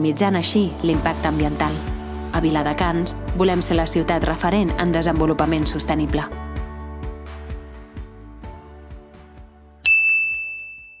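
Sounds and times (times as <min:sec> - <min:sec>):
soft background music with beat: 0:00.0 - 0:10.4
bright chime ringing: 0:09.8 - 0:11.0.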